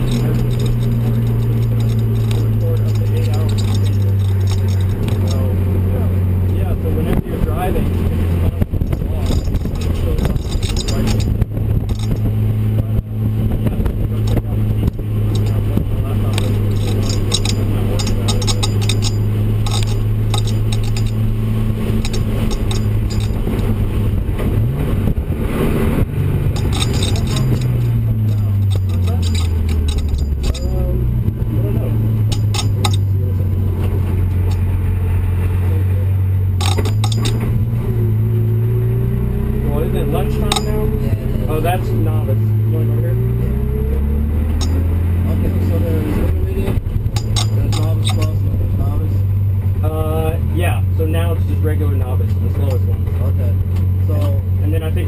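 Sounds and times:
car engine droning: 0:00.0 - 0:55.0.

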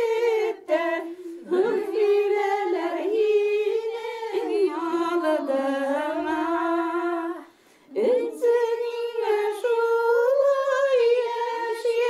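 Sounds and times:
elderly woman singing unaccompanied: 0:00.0 - 0:12.0.

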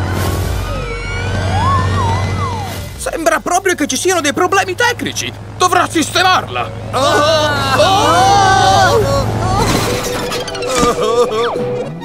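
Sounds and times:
background music: 0:03.9 - 0:12.0.

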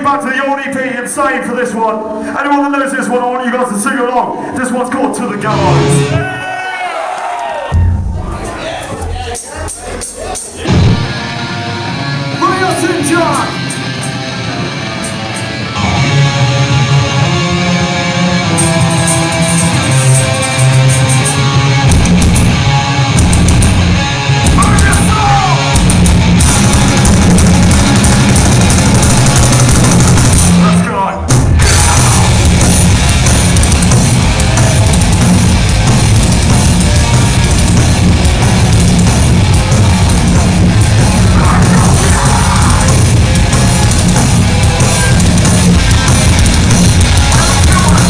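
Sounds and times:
live rock band playing: 0:03.6 - 0:06.4, 0:07.8 - 0:48.0
electric guitar: 0:10.6 - 0:48.0.

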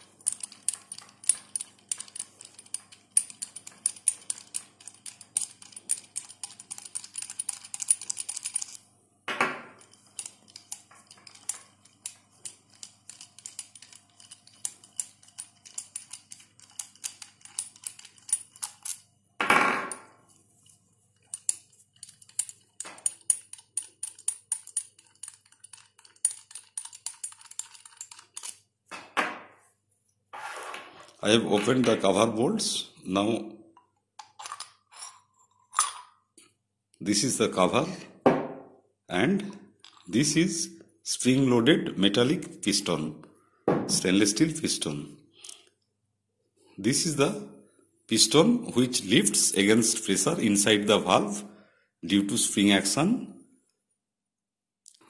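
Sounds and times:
metallic ticking of screws: 0:00.0 - 0:08.8, 0:09.8 - 0:19.0, 0:20.6 - 0:28.6.

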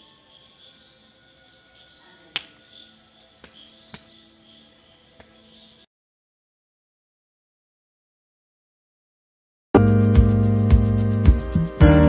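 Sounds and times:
crickets chirping: 0:00.0 - 0:05.9.

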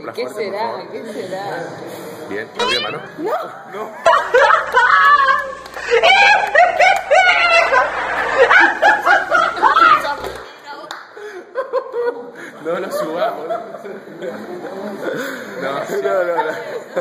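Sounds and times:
group laughing loudly: 0:04.0 - 0:10.2.

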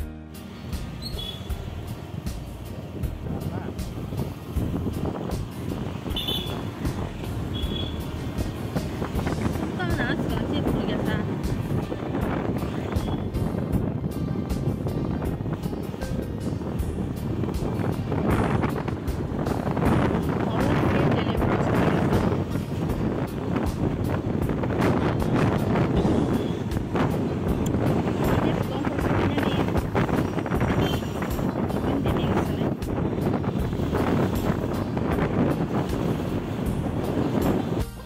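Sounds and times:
motorcycle road and engine noise: 0:00.0 - 0:38.0
music playing: 0:00.0 - 0:38.0
wind buffeting microphone: 0:01.0 - 0:38.0.

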